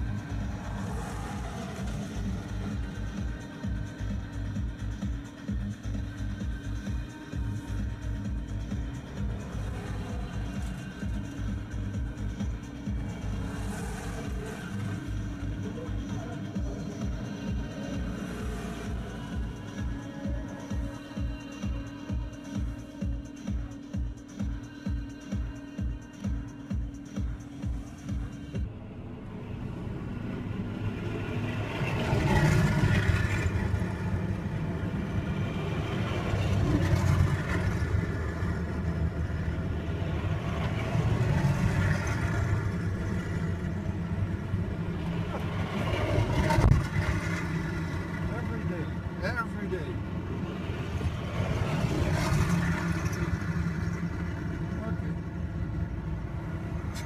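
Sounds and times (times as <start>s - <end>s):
tracked vehicles driving past: 0.0s - 24.0s, 26.5s - 57.0s.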